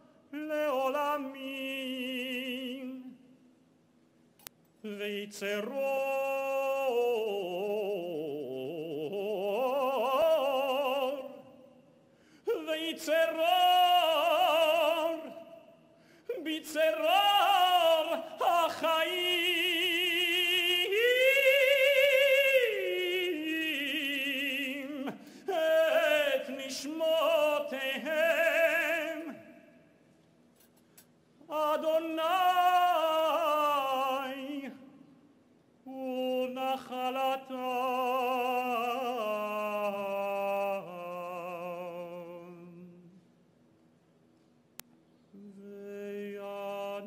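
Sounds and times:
man singing solo: 0:12.5 - 0:15.6, 0:16.3 - 0:29.6.

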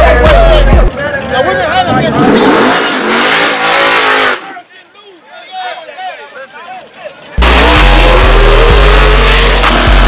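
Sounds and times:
men talking loudly: 0:00.0 - 0:02.8, 0:03.6 - 0:07.8
race car engine running hard: 0:07.4 - 0:10.0.

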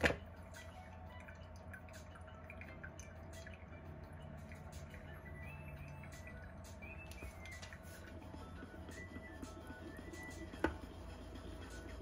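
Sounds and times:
tea dripping: 0:00.0 - 0:09.5
low steady hum: 0:00.0 - 0:12.0.

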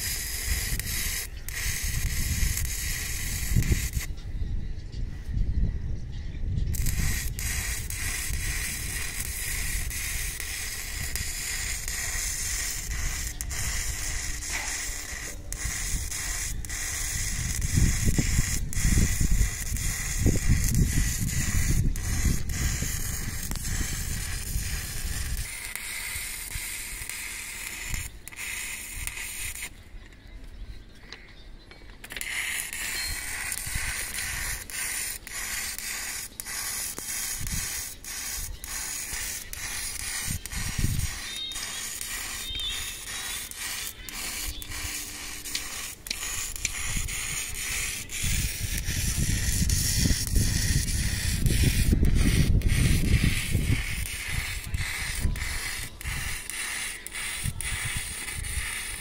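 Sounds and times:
welding arc crackling hiss: 0:00.0 - 0:04.1, 0:06.6 - 0:29.8, 0:32.0 - 0:59.0.

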